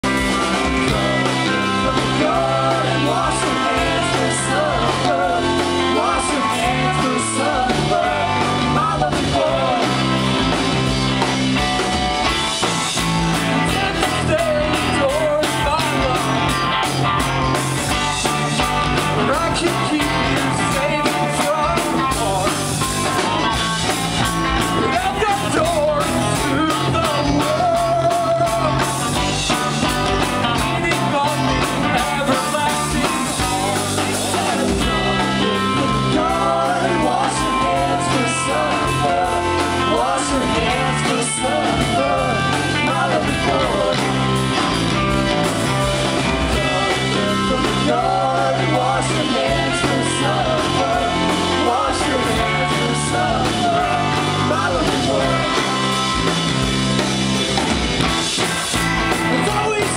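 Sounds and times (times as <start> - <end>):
man singing lead vocal: 0.0 - 10.9, 13.3 - 23.8, 24.6 - 44.8, 45.6 - 56.2, 59.2 - 59.9
bass guitar: 0.0 - 59.9
drum kit: 0.0 - 59.9
electric guitars: 0.0 - 59.9.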